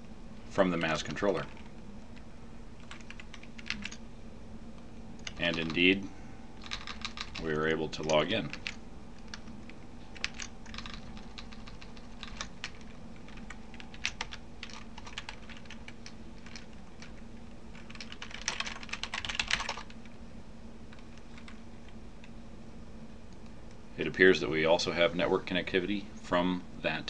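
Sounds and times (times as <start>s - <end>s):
low steady hum: 0.0s - 27.0s
typing on computer keyboard: 2.8s - 4.0s, 6.6s - 7.4s, 8.0s - 20.0s.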